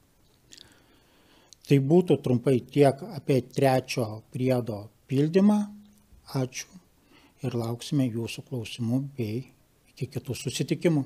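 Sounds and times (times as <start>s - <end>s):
soft breath: 0.5s - 1.6s, 6.9s - 7.4s
man talking: 1.6s - 6.8s, 7.4s - 11.0s.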